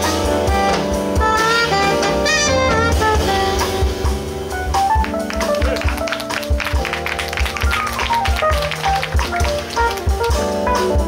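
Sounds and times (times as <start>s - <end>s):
electric bass: 0.0s - 6.1s
drums and cymbals: 0.0s - 11.0s
keyboard: 0.0s - 11.0s
alto saxophone phrase: 0.5s - 4.4s.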